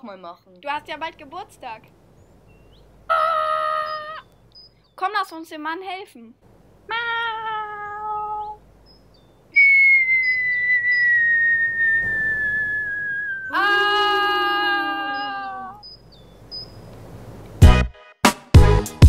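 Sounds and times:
person crying ah: 3.1s - 4.2s, 6.9s - 8.6s, 13.4s - 15.8s
wailing cry falling in pitch: 3.1s - 4.3s, 6.9s - 8.6s, 9.6s - 15.8s
whistle sliding down in pitch: 9.6s - 14.2s.

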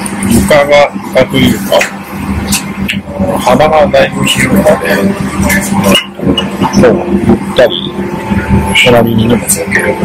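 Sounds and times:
airliner cabin hum: 0.0s - 10.0s
person speaking: 0.1s - 10.0s.

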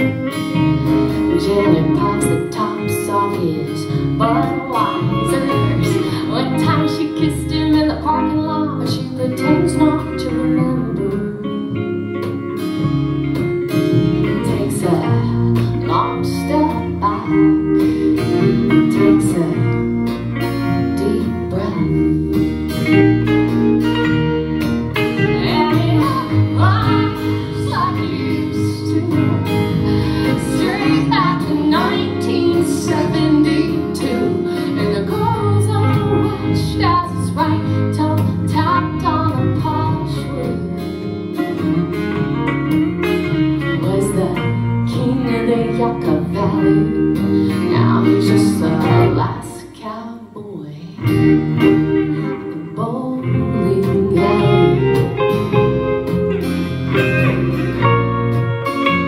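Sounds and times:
woman singing: 0.0s - 23.0s, 25.0s - 56.4s
upright bass: 0.0s - 49.8s, 51.0s - 59.0s
electric guitar: 0.0s - 59.0s.

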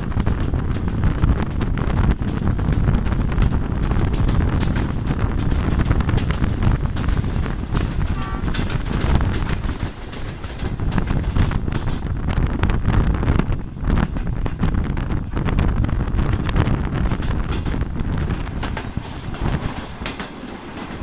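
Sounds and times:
train coaches rumbling with clicks: 0.0s - 21.0s
wind buffeting microphone: 0.0s - 21.0s.

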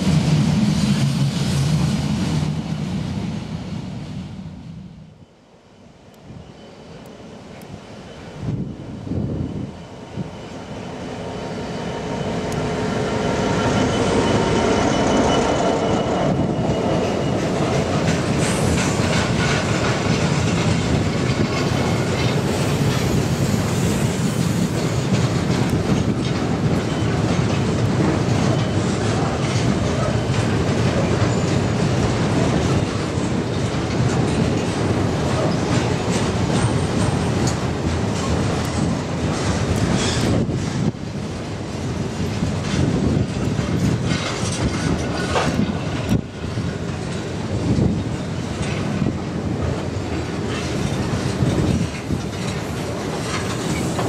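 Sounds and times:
diesel locomotive engine: 0.0s - 54.0s
wagon wheels clattering on rail: 13.5s - 54.0s.

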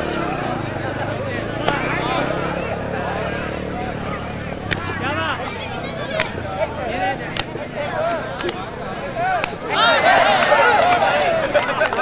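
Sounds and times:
motorcycle engine running: 0.0s - 10.1s
crowd voices: 0.0s - 12.0s
sharp crack: 1.5s - 2.5s, 4.5s - 5.2s, 6.1s - 6.4s, 7.2s - 8.7s, 9.3s - 9.8s.

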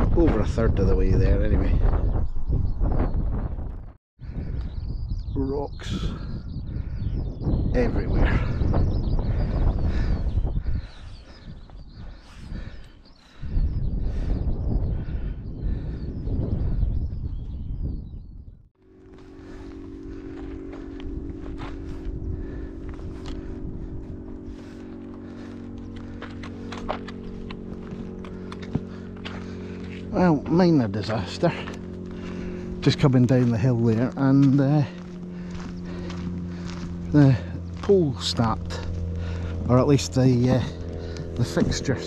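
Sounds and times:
wind buffeting microphone: 0.0s - 42.0s
held music chords: 18.8s - 42.0s
footsteps on rocky path: 19.0s - 39.7s.

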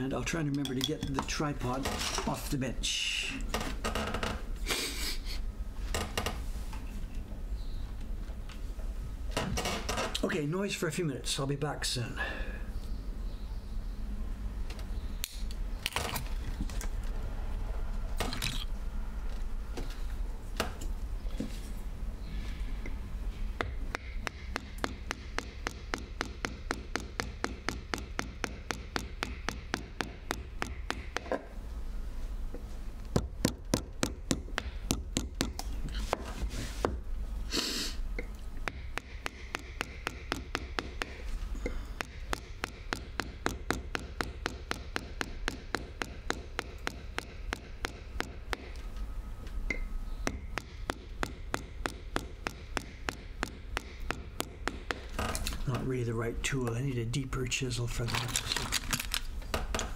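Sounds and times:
mallet striking a chisel: 23.6s - 31.5s, 33.2s - 35.6s, 38.6s - 41.2s, 42.0s - 48.8s, 49.7s - 55.1s.

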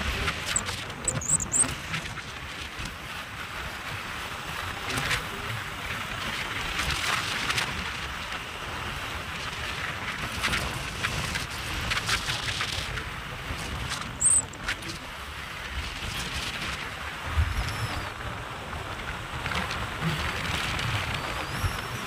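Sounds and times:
motorcycle engine and road noise: 0.0s - 22.0s.

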